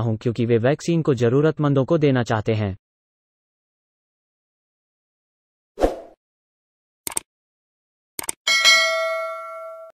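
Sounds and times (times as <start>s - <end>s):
quick double click: 8.2s - 8.4s
bell ding ringing: 8.5s - 10.0s.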